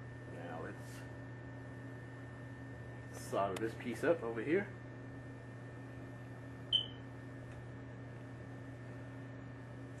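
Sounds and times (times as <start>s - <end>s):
low electrical hum: 0.0s - 10.0s
high-pitched beep: 6.7s - 7.0s.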